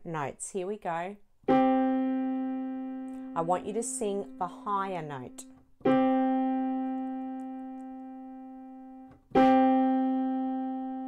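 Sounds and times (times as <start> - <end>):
two piano notes ringing: 1.5 - 11.0.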